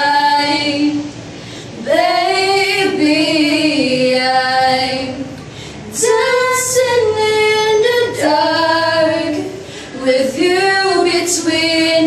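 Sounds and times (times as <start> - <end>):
women singing unaccompanied: 0.0 - 1.1, 1.8 - 12.0.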